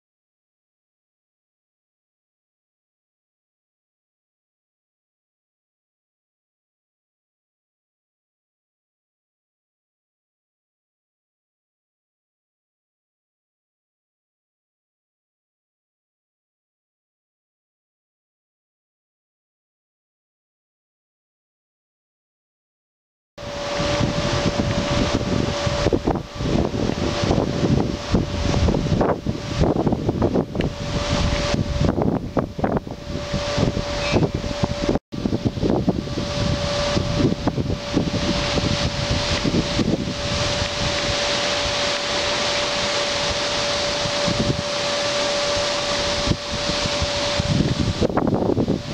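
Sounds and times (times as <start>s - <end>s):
leaves rustling: 23.4s - 48.9s
steady humming tone: 23.4s - 48.9s
wind buffeting microphone: 23.4s - 48.9s.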